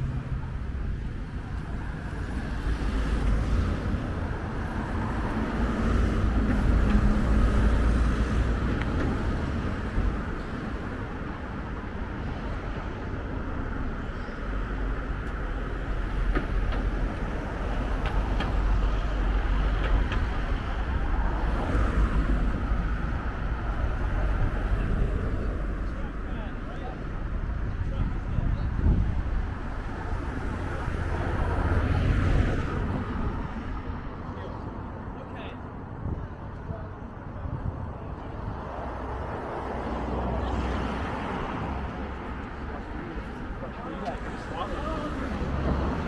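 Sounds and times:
road traffic rumble: 0.0s - 46.0s
vehicles passing: 0.0s - 46.0s.

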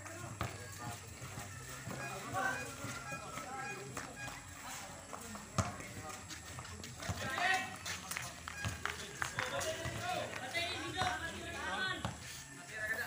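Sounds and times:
basketball bouncing on concrete: 0.1s - 4.4s, 5.1s - 12.2s
people shouting and calling out: 7.0s - 8.0s.

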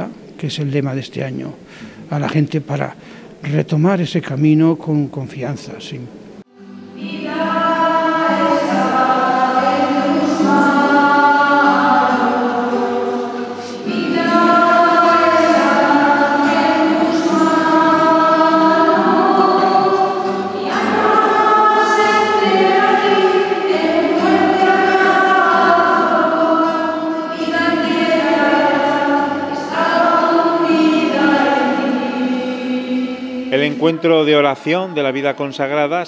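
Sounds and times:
congregation singing a hymn: 5.4s - 36.0s
classical guitar: 6.1s - 33.6s.

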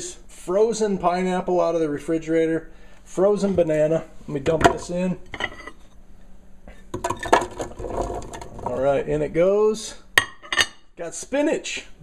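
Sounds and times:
frozen fruit clattering into blender: 7.0s - 8.8s.

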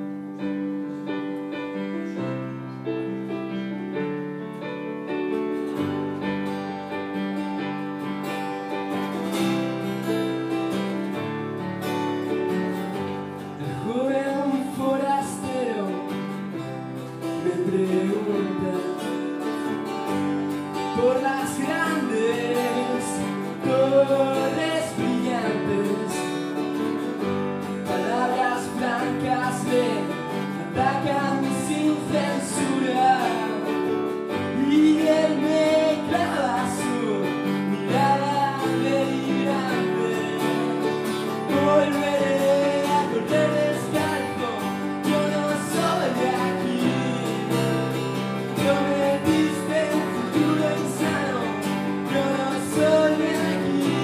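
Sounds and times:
acoustic guitar: 0.0s - 54.0s
keyboard playing: 0.0s - 54.0s
person singing: 13.6s - 27.0s, 27.8s - 54.0s.

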